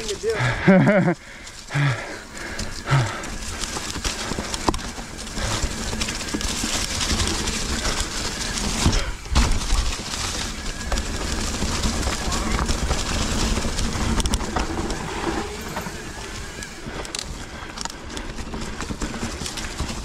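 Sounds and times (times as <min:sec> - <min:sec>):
bike tyre and frame rattle: 0:00.0 - 0:20.0.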